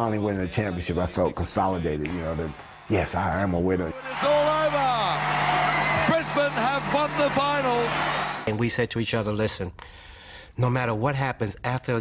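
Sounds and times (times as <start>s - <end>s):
crowd cheering: 1.7s - 8.6s
excited shouts and whoops: 3.9s - 8.4s.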